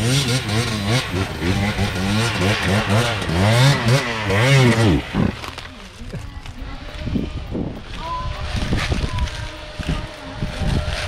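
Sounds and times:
dirt bike engine revving: 0.0 - 5.8
wind buffeting microphone: 6.3 - 11.0.

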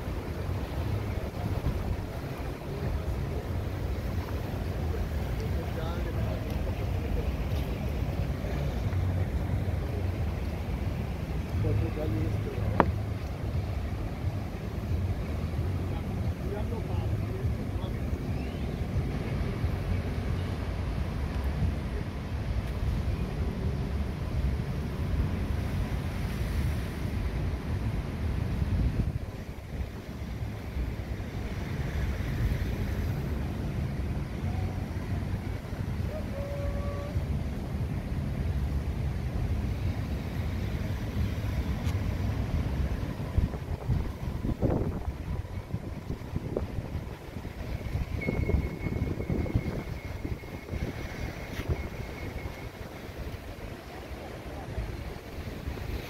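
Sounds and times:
wind buffeting microphone: 37.0 - 56.0.

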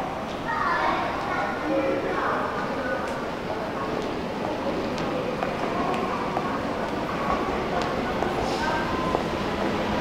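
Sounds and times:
children calling out and playing: 0.4 - 2.2.

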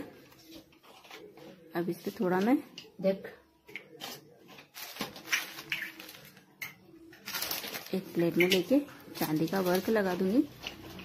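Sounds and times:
plastic sheet crinkling: 4.6 - 6.5, 7.2 - 11.0.

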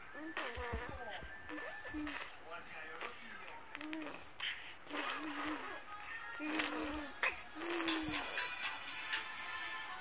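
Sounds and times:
baby humming: 0.1 - 2.4, 3.5 - 8.8.

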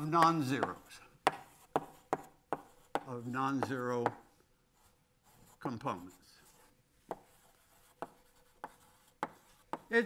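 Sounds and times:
chalk tapping on board: 0.0 - 4.3, 6.4 - 10.0
chalk writing on a blackboard: 0.0 - 10.0.

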